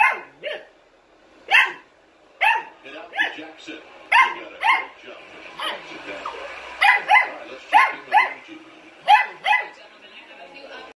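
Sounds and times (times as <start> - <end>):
dog barking high-pitched: 0.0 - 0.7, 1.5 - 3.4, 4.1 - 5.0, 5.6 - 5.8, 6.8 - 8.4, 9.0 - 9.8.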